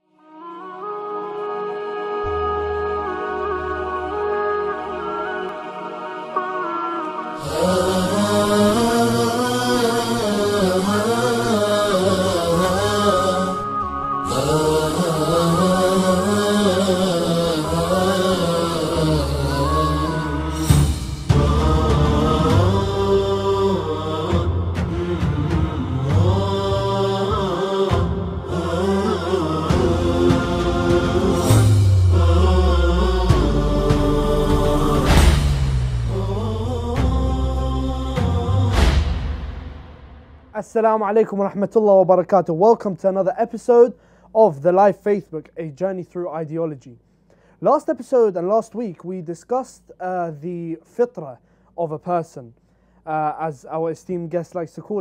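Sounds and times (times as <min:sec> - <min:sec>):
chanted vocal line: 0:00.0 - 0:42.0
intro theme music: 0:00.9 - 0:40.6
low drone: 0:07.4 - 0:40.6.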